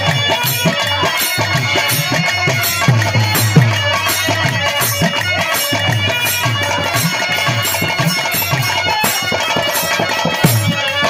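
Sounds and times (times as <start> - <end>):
hand-drum beats: 0.0 - 11.0.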